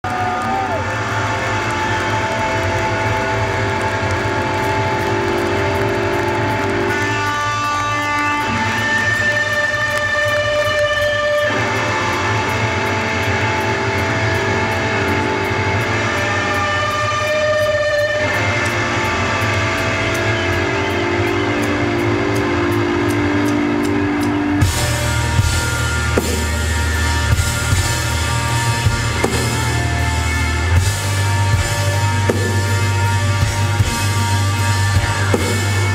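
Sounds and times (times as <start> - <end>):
electric guitar chords: 0.0 - 35.9
low bass drone: 18.7 - 35.9.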